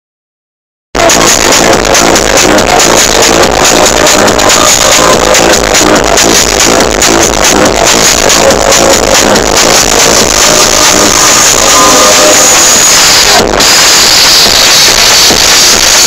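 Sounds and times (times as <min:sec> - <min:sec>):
loud trance music: 0:01.0 - 0:16.0.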